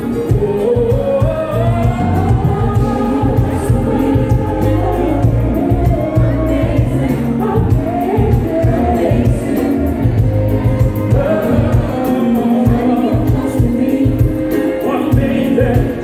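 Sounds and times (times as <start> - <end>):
soul band playing: 0.0 - 16.0
voices singing long held notes: 0.0 - 16.0.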